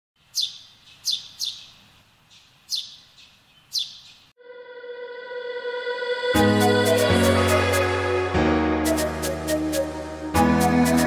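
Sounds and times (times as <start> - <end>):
songbird chirping: 0.2 - 4.4.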